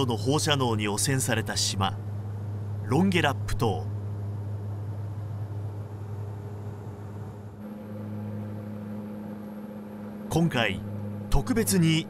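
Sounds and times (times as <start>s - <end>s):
propeller aircraft engines droning: 0.0s - 12.0s.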